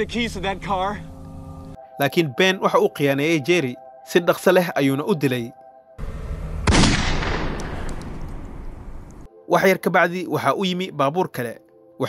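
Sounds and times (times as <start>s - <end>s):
handgun shot echoing: 6.7s - 8.8s.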